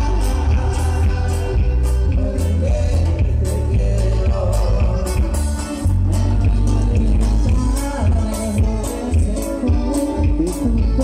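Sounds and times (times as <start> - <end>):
band music with guitars and bass: 0.0 - 11.0.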